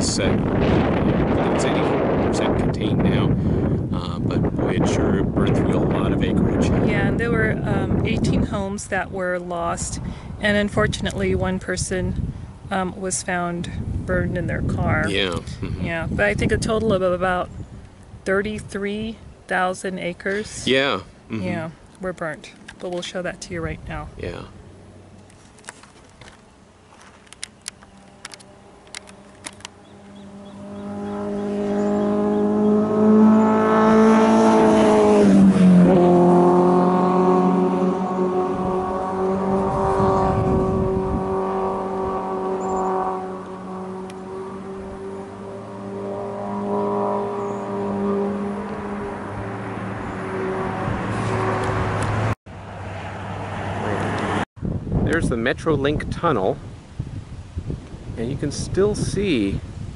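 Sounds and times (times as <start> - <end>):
motor vehicle passing: 0.0 - 54.5.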